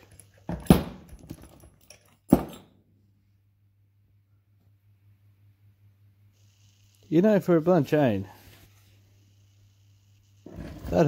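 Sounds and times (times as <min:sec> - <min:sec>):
faint low hum: 0:00.0 - 0:11.0
man speaking: 0:07.1 - 0:08.4.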